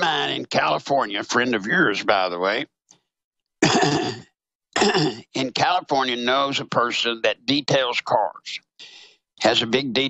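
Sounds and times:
man clearing his throat: 3.6s - 5.3s.

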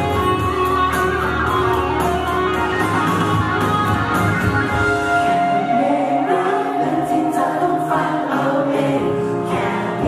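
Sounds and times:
instrumental accompaniment: 0.0s - 7.5s.

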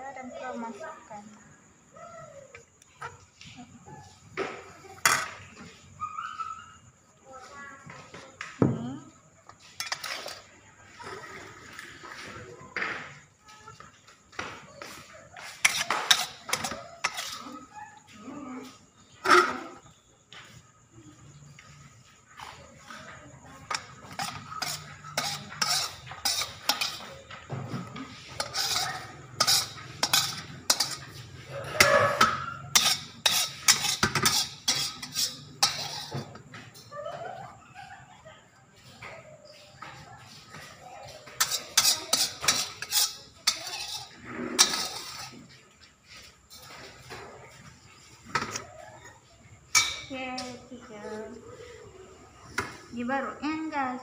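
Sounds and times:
metal spatula scraping a wok: 9.7s - 10.5s, 15.4s - 17.7s, 23.6s - 36.8s, 41.4s - 47.3s, 49.7s - 50.1s.

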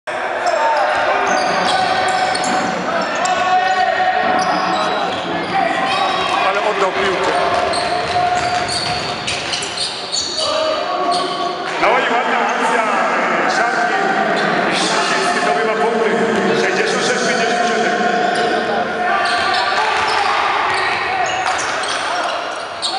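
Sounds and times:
players shouting: 0.1s - 22.9s
sneakers squeaking on floor: 0.4s - 3.5s, 4.2s - 11.6s, 18.3s - 22.9s
basketball bouncing: 7.3s - 9.6s.

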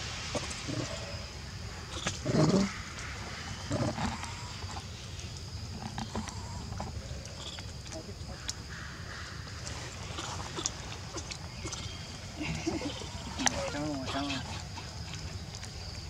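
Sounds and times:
soft monkey calls: 8.3s - 15.4s.

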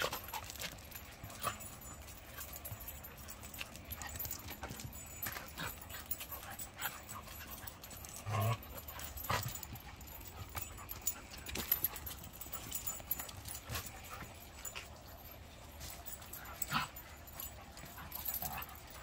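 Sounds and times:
low-pitched dog sound: 0.0s - 19.0s
paws scuffling on concrete: 0.0s - 19.0s.

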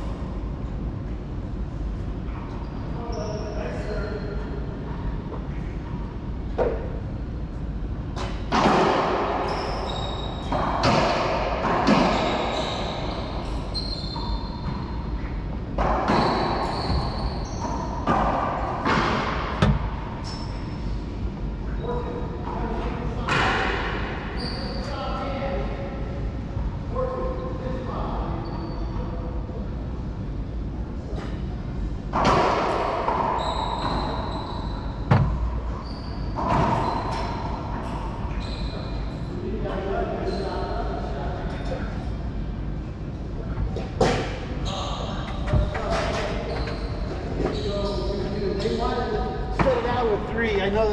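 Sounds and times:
sneaker squeaks on hardwood floor: 9.4s - 11.1s, 11.7s - 20.9s, 24.4s - 24.9s, 33.1s - 37.5s, 38.3s - 39.2s, 40.2s - 40.7s, 44.0s - 49.0s.

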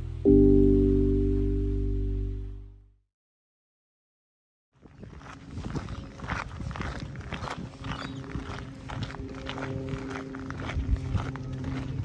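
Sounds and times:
footsteps on gravel: 4.8s - 12.0s
low rumble: 7.2s - 12.0s.

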